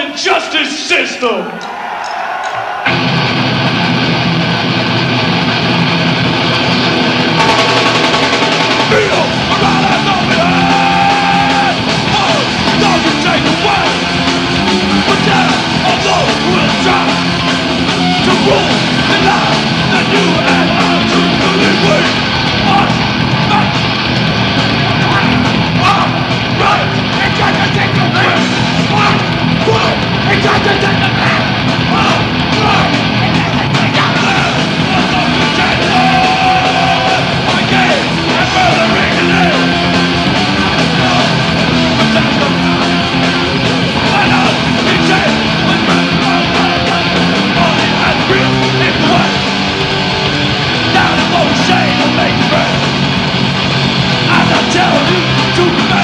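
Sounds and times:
drums: 0.0 - 56.0
punk band with distorted guitars: 0.0 - 56.0
shouted vocals: 8.8 - 24.0, 24.9 - 49.6, 50.8 - 52.9, 54.2 - 56.0.

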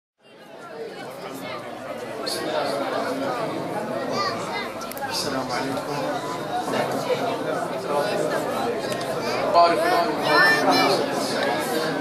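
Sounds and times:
murmur of many people talking: 0.2 - 12.0.

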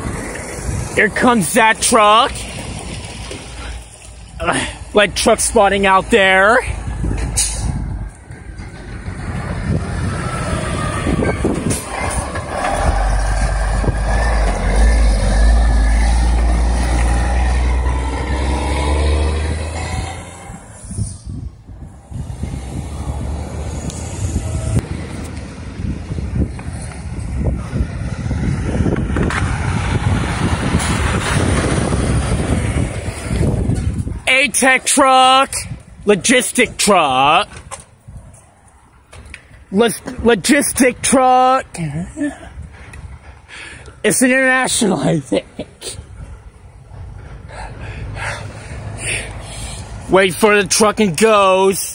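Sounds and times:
diesel trucks driving past: 0.0 - 51.9.

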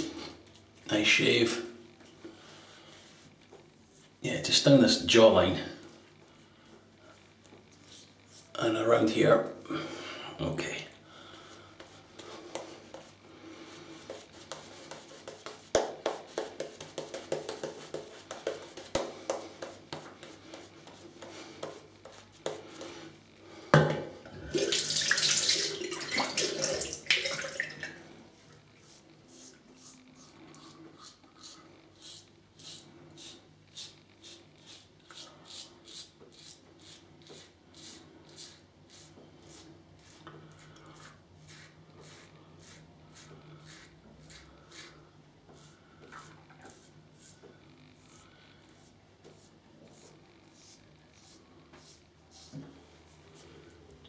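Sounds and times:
razor scraping stubble: 28.4 - 53.5.

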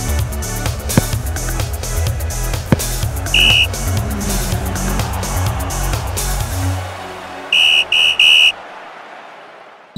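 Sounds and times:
closing theme music: 2.8 - 7.5
loud high-pitched tones: 3.4 - 3.8, 7.6 - 8.6.

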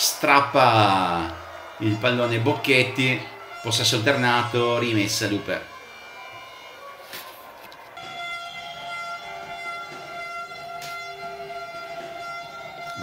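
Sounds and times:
horns blowing steady notes: 0.0 - 13.0.

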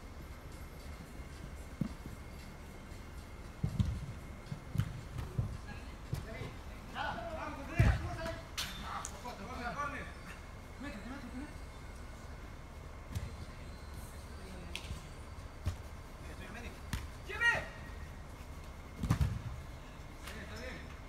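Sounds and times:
low steady hall hum: 0.0 - 21.0
footfalls on artificial turf: 3.5 - 8.5.

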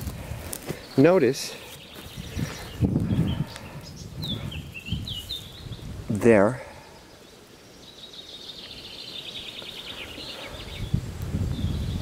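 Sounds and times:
bird chirping: 0.7 - 12.0.

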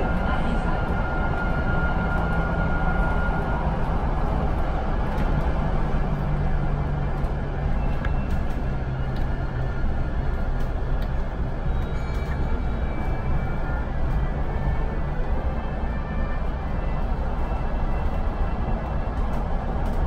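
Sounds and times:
bus road noise: 0.0 - 20.0.

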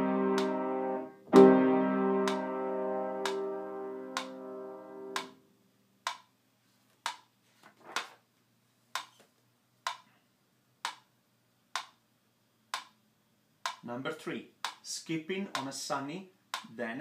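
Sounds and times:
piano chord: 0.0 - 5.4
metronome clicking: 2.2 - 2.4, 3.2 - 3.4, 4.1 - 4.4, 5.1 - 5.3.

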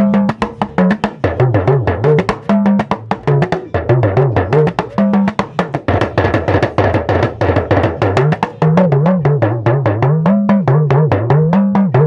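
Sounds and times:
talking drum beaten rapidly: 0.0 - 12.0.

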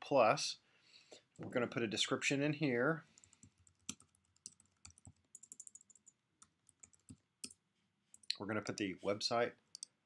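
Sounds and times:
computer keyboard typing: 3.2 - 7.6, 9.7 - 9.9.

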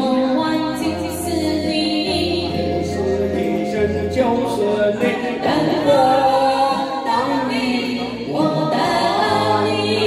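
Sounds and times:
man and woman singing duet: 0.0 - 10.0
pop backing music: 0.0 - 10.0.

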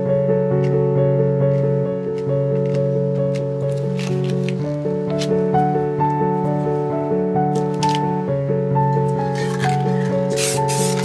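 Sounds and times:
instrumental music: 0.0 - 11.0.

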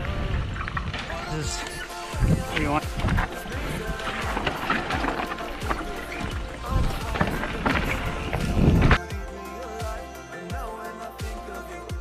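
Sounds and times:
bike rattling over rock: 0.0 - 9.0
wind on microphone: 0.0 - 9.0
background music: 0.0 - 12.0.

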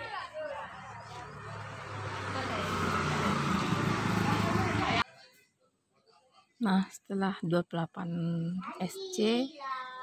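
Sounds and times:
motor vehicle engine passing by: 0.6 - 5.0.

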